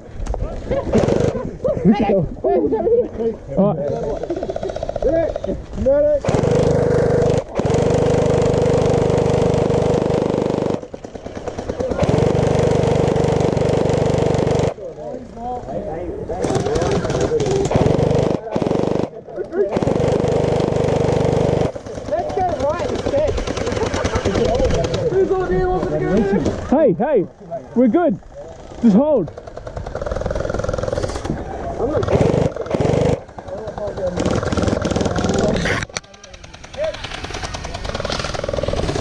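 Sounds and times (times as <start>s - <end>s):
gel blaster firing bursts: 0.9s - 1.4s, 6.2s - 14.8s, 16.4s - 25.2s, 28.5s - 31.4s, 32.0s - 39.0s.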